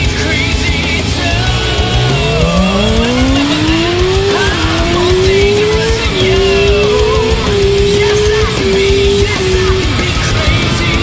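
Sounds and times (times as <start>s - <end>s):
motorcycle engine accelerating: 0.0s - 11.0s.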